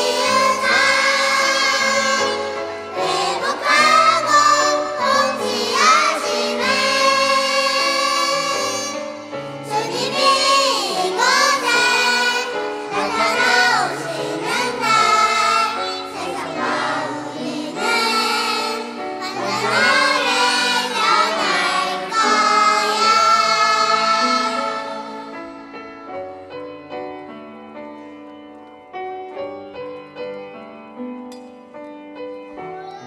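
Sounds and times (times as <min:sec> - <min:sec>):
choir of children and women singing: 0:00.0 - 0:25.5.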